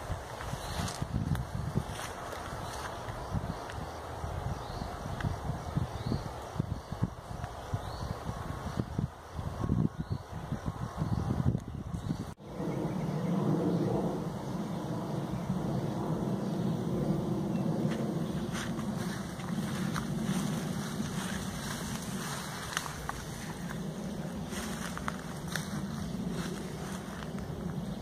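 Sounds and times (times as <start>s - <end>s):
wind rumble on microphone: 0.0s - 28.0s.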